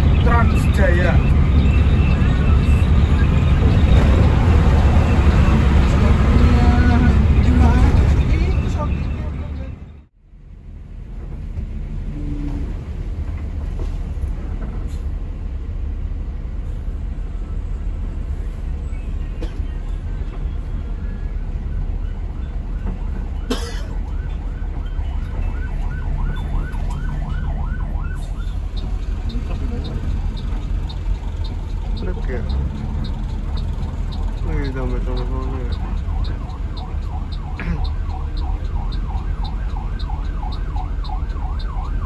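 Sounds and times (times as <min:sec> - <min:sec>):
bus diesel engine rumble: 0:00.0 - 0:42.0
emergency vehicle siren yelping: 0:20.8 - 0:42.0.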